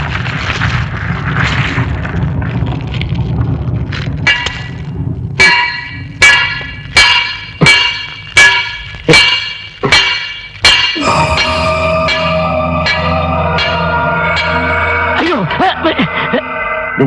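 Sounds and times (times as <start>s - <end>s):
low rumble: 0.0s - 9.7s, 10.8s - 17.0s
hammer clanging on anvil: 5.4s - 16.2s.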